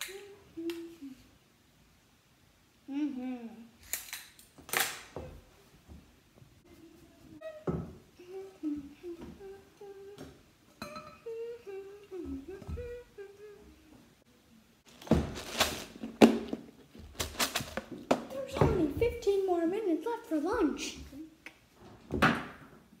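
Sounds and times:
child humming: 0.0s - 1.3s, 2.9s - 3.8s, 7.3s - 10.4s, 11.1s - 14.0s.

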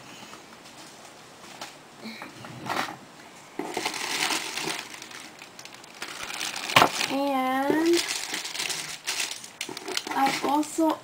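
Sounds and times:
packaging crinkling and rustling: 3.6s - 11.0s.

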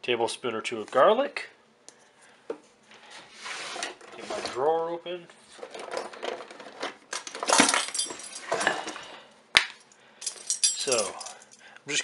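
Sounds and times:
metal utensils clinking in drawer: 7.2s - 9.0s, 10.3s - 11.4s.

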